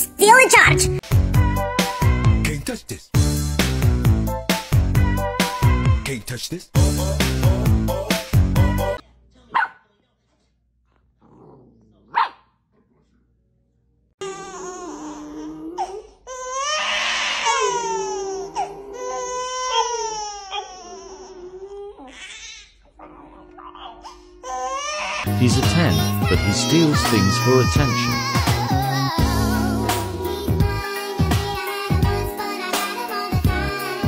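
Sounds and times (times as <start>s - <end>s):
infant crying: 14.2s - 29.4s.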